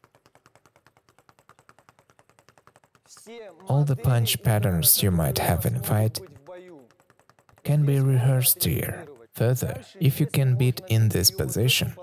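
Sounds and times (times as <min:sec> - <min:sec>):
speed bag rattling: 0:00.0 - 0:10.4.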